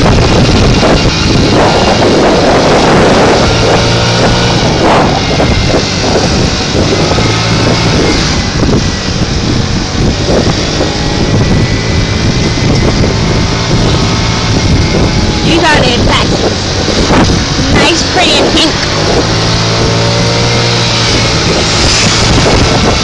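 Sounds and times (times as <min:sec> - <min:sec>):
moped engine running: 0:00.0 - 0:23.0
wind on microphone: 0:00.0 - 0:23.0
person speaking: 0:15.4 - 0:16.3, 0:17.6 - 0:18.8.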